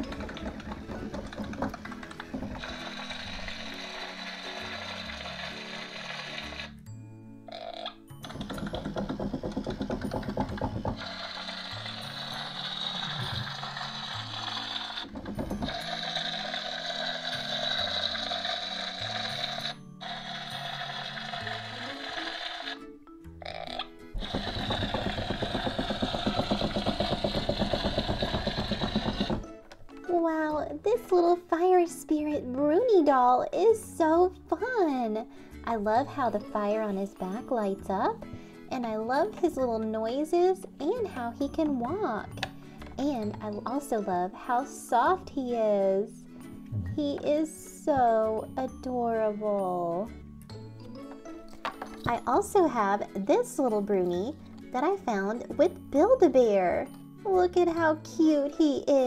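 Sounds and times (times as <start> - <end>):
toy motor mechanical clatter: 0.0 - 6.8, 7.8 - 22.8, 23.8 - 29.5
background music: 0.0 - 59.0.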